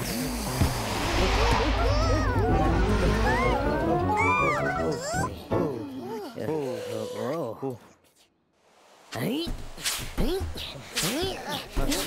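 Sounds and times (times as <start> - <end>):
cartoon background music: 2.1 - 6.7.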